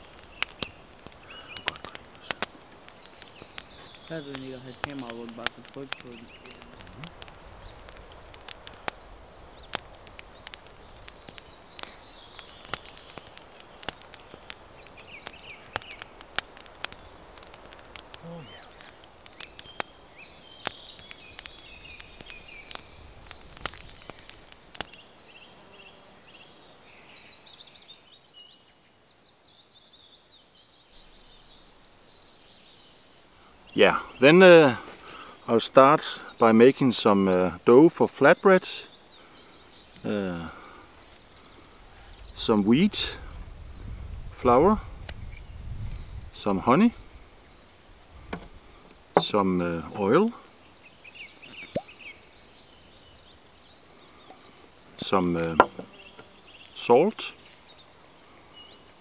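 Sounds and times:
wood fire crackling and popping: 0.0s - 25.7s, 30.9s - 59.0s
birds chirping: 0.0s - 59.0s.

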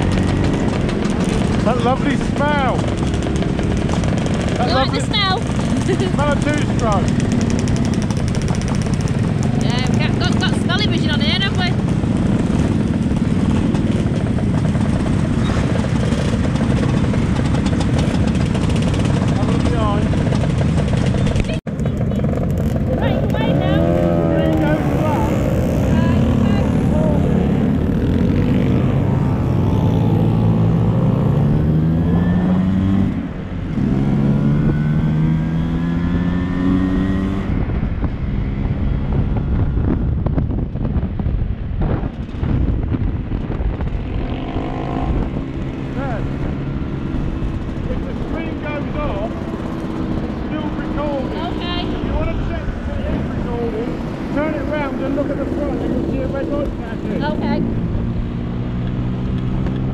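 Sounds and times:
scooter engine accelerating: 0.0s - 41.1s, 41.8s - 59.9s
motor scooter engines running: 0.0s - 59.9s.

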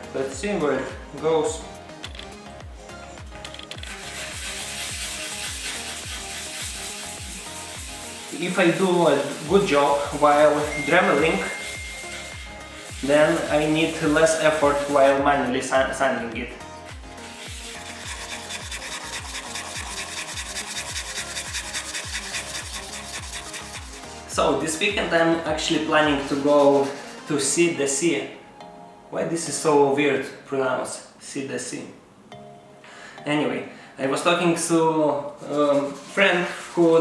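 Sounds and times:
tropical house music: 0.0s - 29.1s, 35.4s - 37.0s
amber rubbed on sandpaper: 3.8s - 10.6s, 11.2s - 15.2s, 17.2s - 24.3s, 25.7s - 27.6s, 35.4s - 37.0s.

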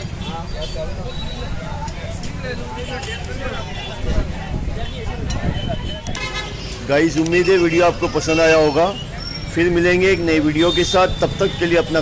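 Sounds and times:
crowd chatter: 0.0s - 12.0s
traffic rumble: 0.0s - 12.0s.

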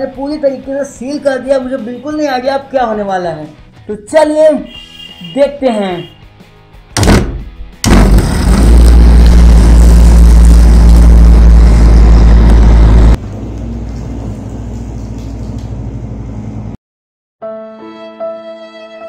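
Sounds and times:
mixer grinder motor running: 7.8s - 13.7s.

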